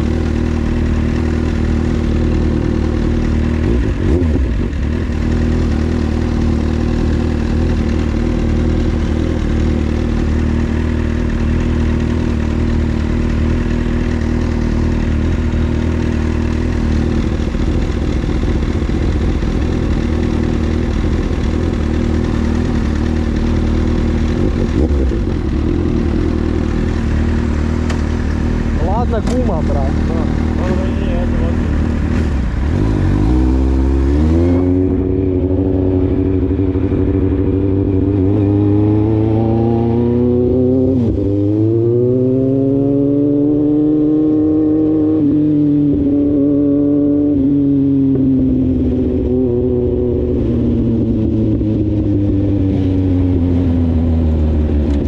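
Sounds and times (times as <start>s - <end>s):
motorcycle engines idling: 0.0s - 33.1s.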